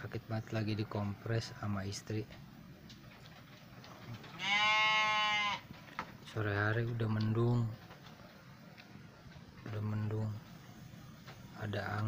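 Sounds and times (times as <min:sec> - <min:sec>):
goat bleating: 0:04.3 - 0:05.7.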